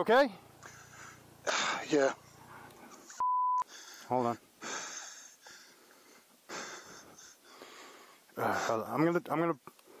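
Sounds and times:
person breathing hard: 0:00.6 - 0:01.9, 0:03.6 - 0:08.8.

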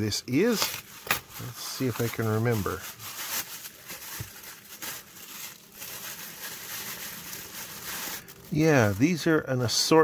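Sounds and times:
plastic bags crinkling: 0:00.0 - 0:09.4.

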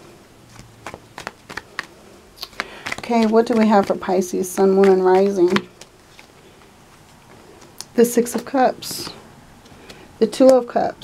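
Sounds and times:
cards being shuffled: 0:00.5 - 0:08.4.

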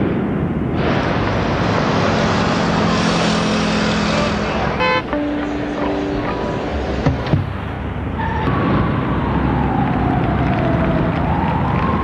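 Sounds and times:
street traffic: 0:00.0 - 0:12.0
vehicle passing: 0:00.8 - 0:12.0
car horn toot: 0:04.8 - 0:06.4.

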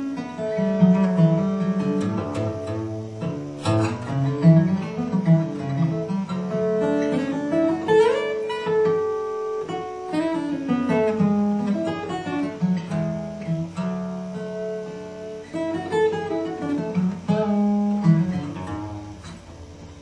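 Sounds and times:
fingerpicked acoustic guitar: 0:00.0 - 0:20.0.

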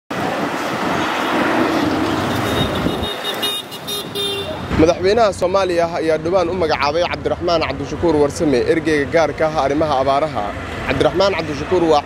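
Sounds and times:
street traffic: 0:00.1 - 0:12.0
horn toots: 0:02.2 - 0:04.7.

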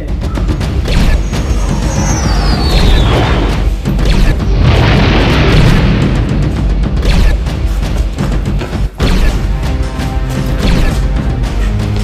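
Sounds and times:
booming music score: 0:00.0 - 0:12.0
heavy low rumble: 0:01.5 - 0:08.1
sharp blast: 0:02.6 - 0:06.4.

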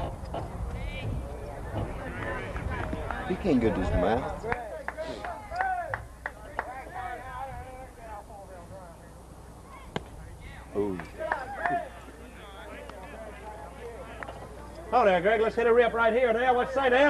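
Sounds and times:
voices calling out: 0:00.0 - 0:16.8.

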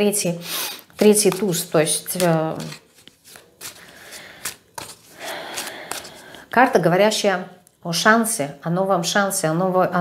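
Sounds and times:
cards rustling as shuffled: 0:00.9 - 0:06.4.

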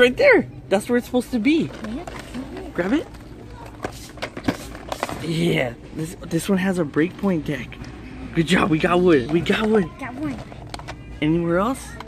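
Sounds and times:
low store background: 0:00.0 - 0:12.0.

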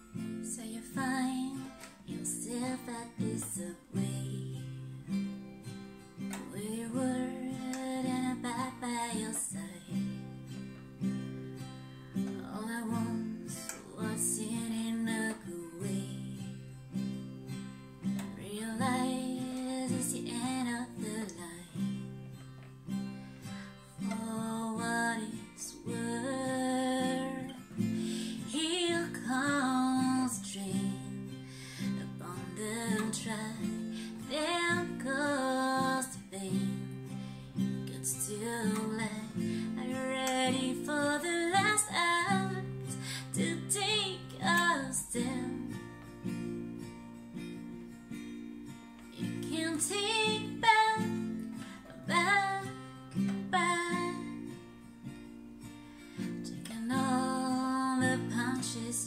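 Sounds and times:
acoustic guitar strumming: 0:00.0 - 0:59.0
woman singing: 0:00.1 - 0:05.3, 0:06.2 - 0:10.3, 0:12.2 - 0:17.1, 0:18.1 - 0:22.2, 0:23.9 - 0:46.1, 0:49.2 - 0:54.6, 0:56.4 - 0:59.0.

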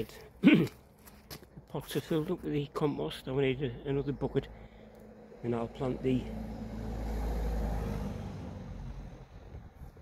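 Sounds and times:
vehicle passing: 0:03.6 - 0:10.0.

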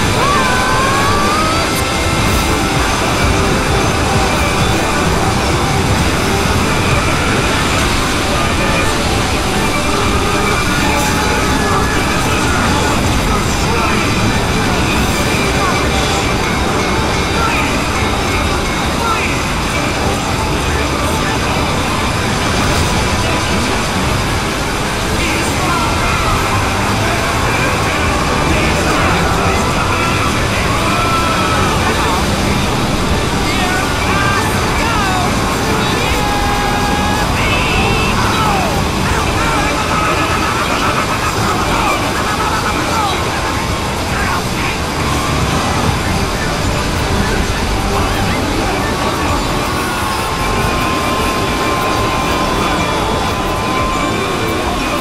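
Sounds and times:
faint buried voices: 0:00.0 - 0:55.0
overlapping video soundtracks: 0:00.0 - 0:55.0.

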